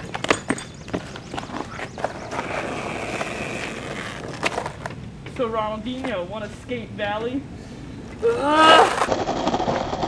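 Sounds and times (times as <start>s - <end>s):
rolling grinding noise: 0.0s - 6.7s, 8.8s - 10.0s.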